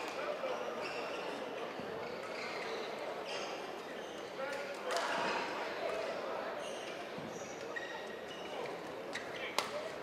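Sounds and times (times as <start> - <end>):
murmur of voices in echoing hall: 0.0 - 10.0.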